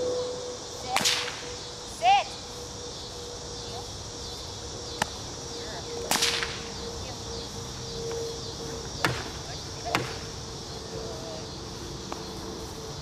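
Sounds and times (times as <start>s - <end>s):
whip cracks: 0.9s - 1.5s, 6.1s - 6.6s.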